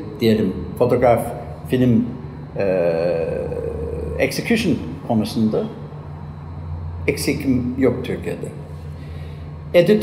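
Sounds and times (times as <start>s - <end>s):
man's drawn-out hesitation sound: 0.0s - 6.0s.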